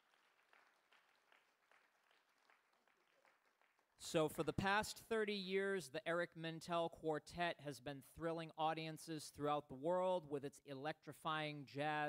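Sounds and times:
faint audience applause: 0:00.0 - 0:04.2.

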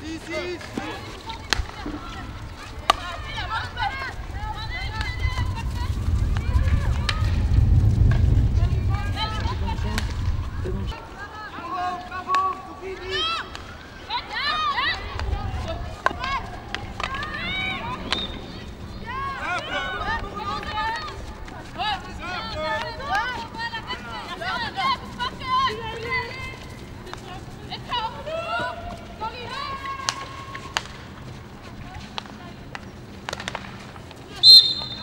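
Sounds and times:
low background noise: 0:00.0 - 0:35.0
hockey sticks clicking on ball: 0:00.1 - 0:05.8, 0:09.2 - 0:10.4, 0:11.8 - 0:35.0
players shouting: 0:10.8 - 0:31.1
shrill whistle blast: 0:34.4 - 0:35.0.

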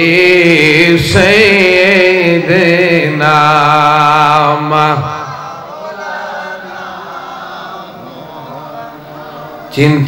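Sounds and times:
soft male chanting: 0:00.0 - 0:10.0.

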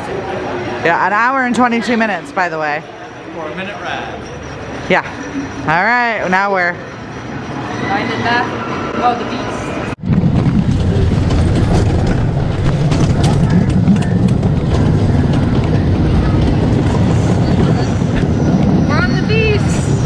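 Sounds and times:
roller coaster train rumbling: 0:00.0 - 0:20.0
rushing air: 0:08.6 - 0:20.0.

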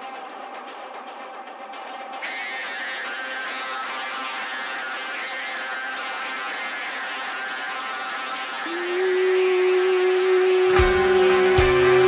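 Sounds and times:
ambient music drone: 0:02.2 - 0:12.0.

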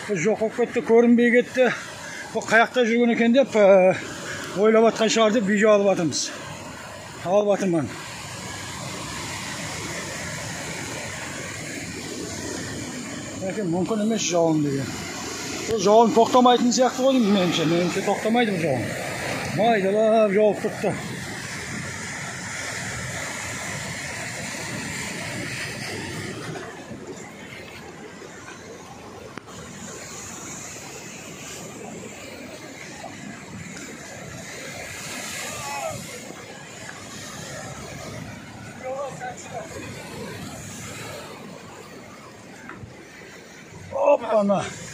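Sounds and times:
sea waves breaking on boulders: 0:00.0 - 0:44.9.

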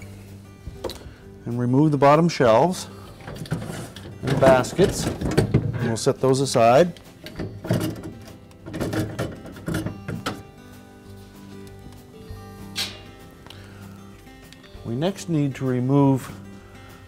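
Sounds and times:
soft background music: 0:00.0 - 0:17.0
wire baskets clattering: 0:03.2 - 0:06.4, 0:07.2 - 0:10.4.

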